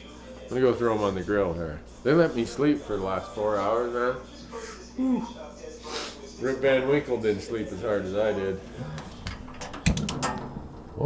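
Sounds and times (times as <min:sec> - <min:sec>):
grill igniter clicks: 0:09.2 - 0:10.9.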